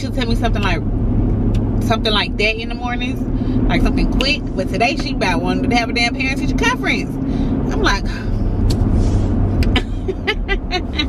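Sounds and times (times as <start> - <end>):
car road and engine rumble: 0.0 - 11.0
woman laughing: 9.6 - 11.0.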